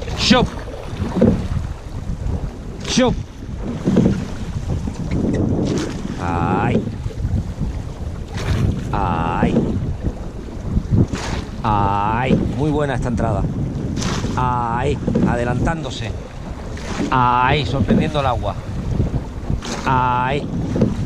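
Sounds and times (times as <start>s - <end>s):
oars pulling through water: 0.0s - 21.0s
water noise: 0.0s - 21.0s
wind on microphone: 0.0s - 21.0s.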